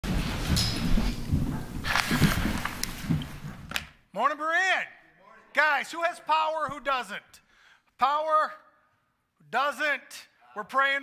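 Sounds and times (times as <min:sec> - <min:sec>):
shuffling and handling rumble: 0:00.0 - 0:03.7.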